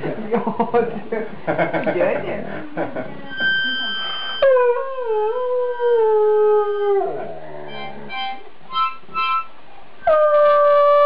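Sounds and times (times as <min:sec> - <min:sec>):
dog howling: 0:04.4 - 0:08.1.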